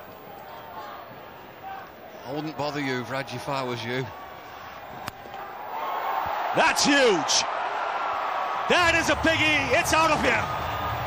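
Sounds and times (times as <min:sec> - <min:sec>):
stadium crowd: 0:00.0 - 0:11.0.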